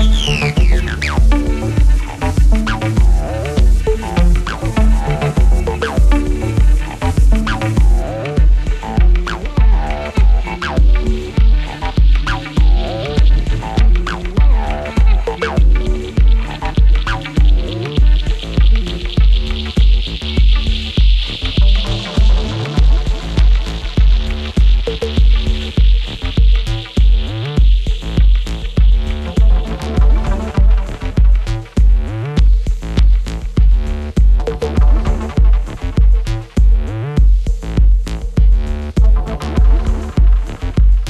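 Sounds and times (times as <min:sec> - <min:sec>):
bright steady hiss: 0:00.0 - 0:41.0
kick drum: 0:00.0 - 0:41.0
squelchy synth bass lines: 0:00.0 - 0:41.0.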